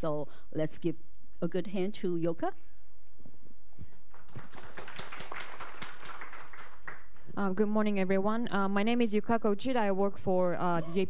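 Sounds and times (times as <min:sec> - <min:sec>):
audience applauding: 0:04.1 - 0:07.3.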